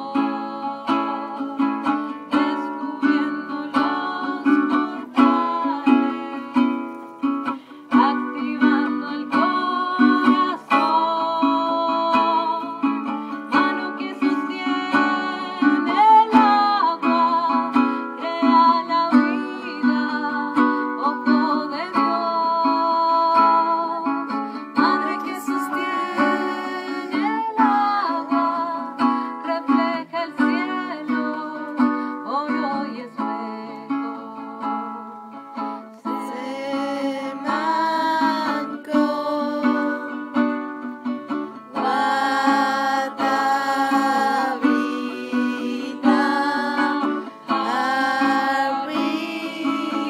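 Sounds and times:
person singing: 0.0s - 50.0s
stringed instrument strummed: 0.0s - 50.0s.

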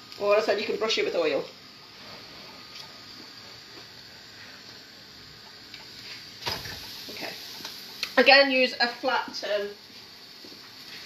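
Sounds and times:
bread sizzling on hot griddle: 0.0s - 11.0s.

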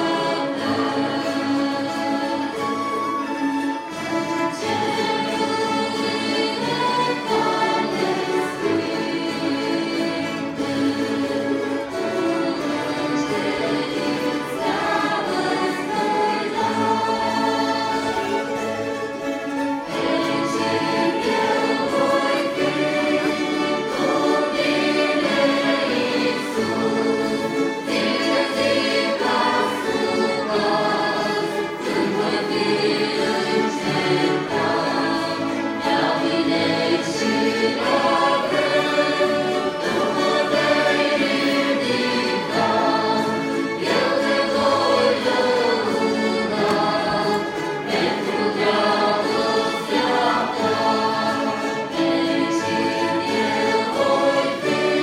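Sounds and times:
choir singing: 0.0s - 55.0s
string ensemble playing a hymn: 0.0s - 55.0s.

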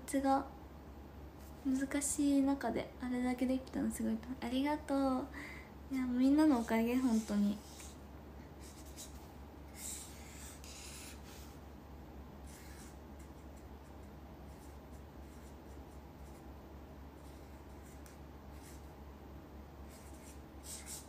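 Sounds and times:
steady low hum: 0.0s - 21.0s
soft scratching and rubbing: 6.3s - 8.0s.

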